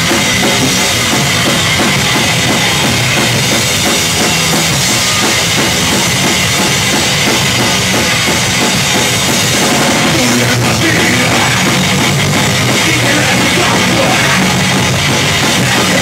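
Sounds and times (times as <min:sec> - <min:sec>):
bass drum and snare hits: 0:00.0 - 0:16.0
punk band playing live: 0:00.0 - 0:16.0.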